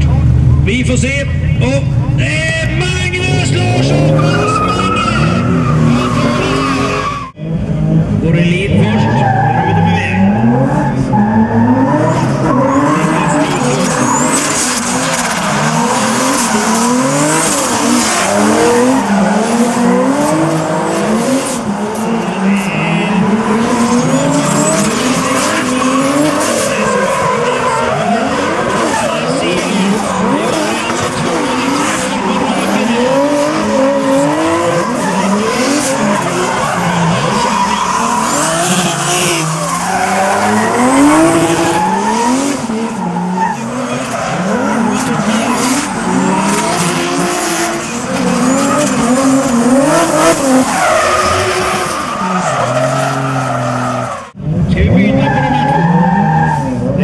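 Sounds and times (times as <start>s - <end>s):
car engine revving hard: 2.7s - 57.0s
tyres screeching: 3.2s - 7.4s, 8.7s - 54.4s.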